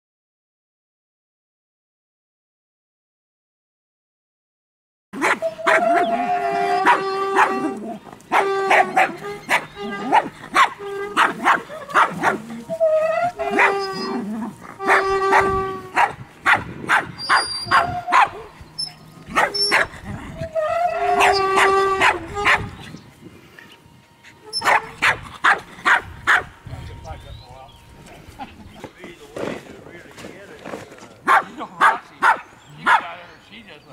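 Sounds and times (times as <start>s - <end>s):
small dog barking and yapping: 5.2s - 6.2s, 6.8s - 12.6s, 13.4s - 18.6s, 19.3s - 19.9s, 21.2s - 22.7s, 24.5s - 26.5s, 31.2s - 33.1s.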